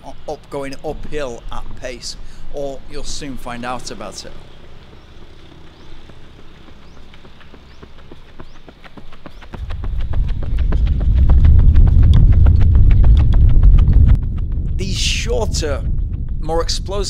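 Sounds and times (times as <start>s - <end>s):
running footsteps on asphalt: 3.9s - 14.8s
loud low rumble: 9.6s - 17.0s.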